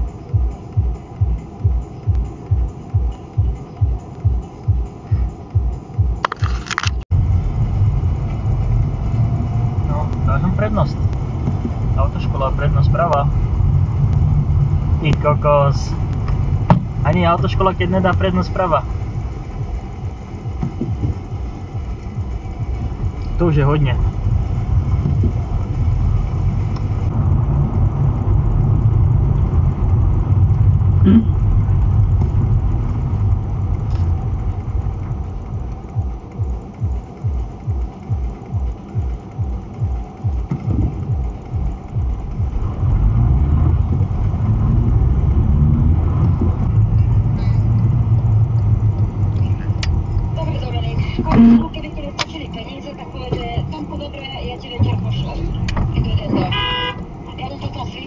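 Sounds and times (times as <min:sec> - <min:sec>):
car engine and road rumble: 0:00.0 - 0:58.0.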